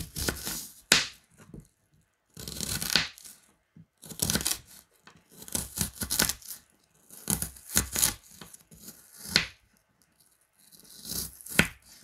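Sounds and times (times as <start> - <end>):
knife slicing onion: 0.0 - 1.2, 2.4 - 3.4, 4.0 - 9.6, 10.7 - 12.0.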